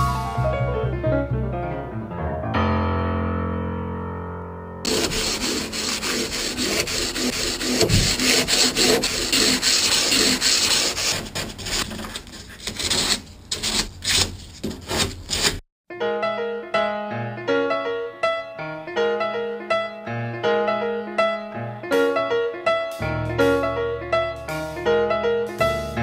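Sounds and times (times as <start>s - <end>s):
piano tune: 0.0s - 11.8s, 15.9s - 26.0s
sandpaper rubbing on wood: 4.9s - 15.6s.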